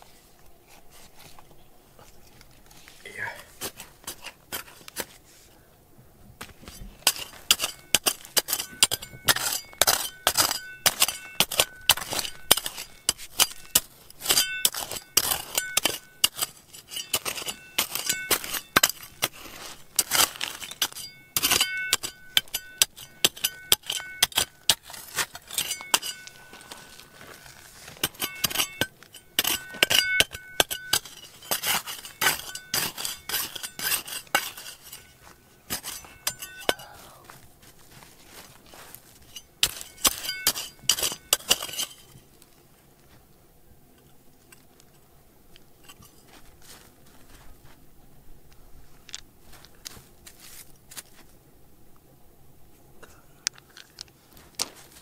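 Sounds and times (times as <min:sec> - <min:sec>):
trowel scraping and striking rocks: 0:02.2 - 0:05.3, 0:06.4 - 0:42.4, 0:45.5 - 0:47.5
trowel blade ringing: 0:07.1 - 0:19.3, 0:20.0 - 0:26.7, 0:28.0 - 0:36.9, 0:39.3 - 0:42.1.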